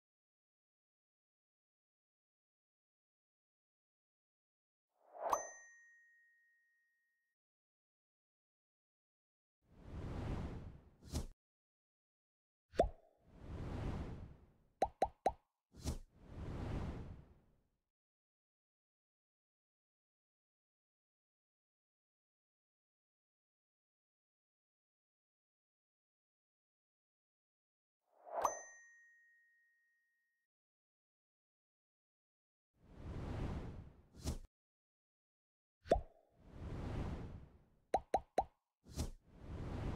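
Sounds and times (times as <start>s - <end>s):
whoosh: 9.8s - 11.3s, 13.4s - 14.4s, 15.8s - 17.3s, 32.9s - 34.5s, 36.5s - 37.6s, 38.9s - 39.9s
cartoon pop sound effects: 12.8s - 13.0s, 14.8s - 15.4s, 35.9s - 36.1s, 38.0s - 38.5s
soft whoosh: 32.9s - 34.5s.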